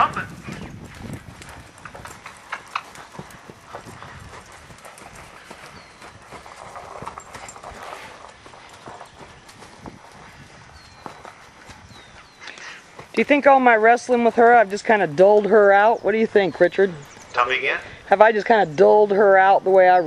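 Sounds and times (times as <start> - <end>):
hoofbeats on sand: 0.0 - 18.2.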